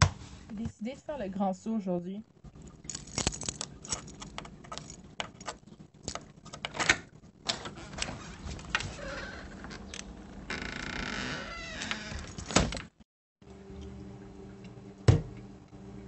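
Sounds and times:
small hard objects rattling: 0:02.9 - 0:05.0.

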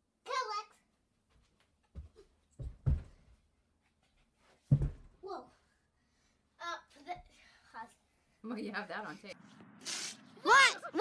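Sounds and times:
short hiss: 0:09.8 - 0:10.3.

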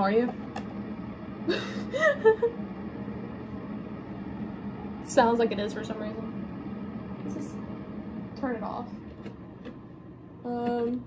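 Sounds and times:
faint steady hum: 0:00.0 - 0:11.0
woman's breathy laugh: 0:01.5 - 0:02.6.

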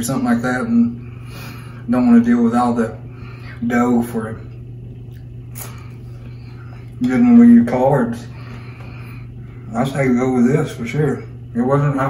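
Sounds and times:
steady low hum: 0:00.0 - 0:12.0
man chewing: 0:05.0 - 0:07.0
wet mouth smack: 0:05.1 - 0:05.9.

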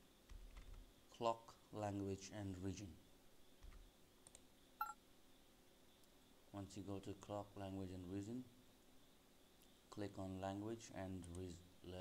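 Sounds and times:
faint clicks: 0:03.6 - 0:04.5
two-tone electronic beep: 0:04.8 - 0:05.0.

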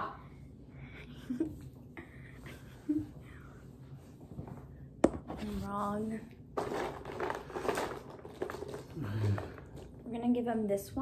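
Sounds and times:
plastic tubes clattering: 0:06.6 - 0:10.1.

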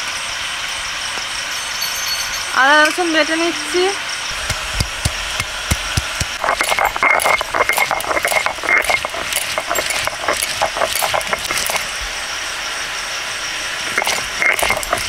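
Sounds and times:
stone pounding garlic thumps: 0:04.3 - 0:11.6
stone scraping on stone: 0:04.5 - 0:12.0, 0:13.8 - 0:15.0.

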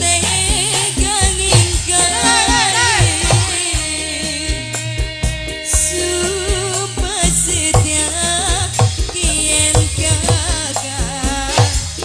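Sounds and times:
female singer with band: 0:00.0 - 0:12.0.

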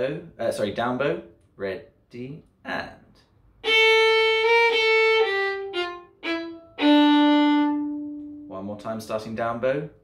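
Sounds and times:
solo violin playing: 0:03.6 - 0:08.5.

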